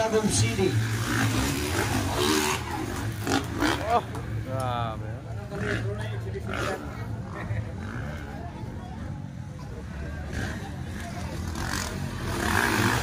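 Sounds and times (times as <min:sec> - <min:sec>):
dirt bike engines revving: 0:00.0 - 0:13.0.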